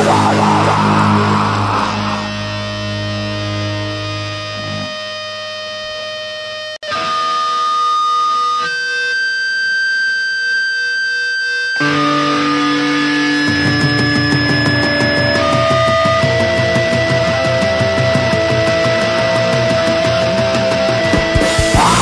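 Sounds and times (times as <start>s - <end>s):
distorted electric guitar: 0.0s - 22.0s
live band playing: 13.4s - 22.0s.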